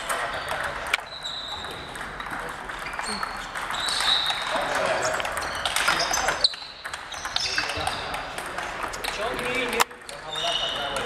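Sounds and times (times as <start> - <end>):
table tennis balls clicking: 0.0 - 11.0.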